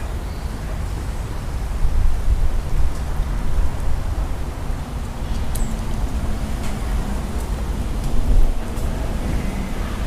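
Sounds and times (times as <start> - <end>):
wind buffeting microphone: 1.3 - 10.0.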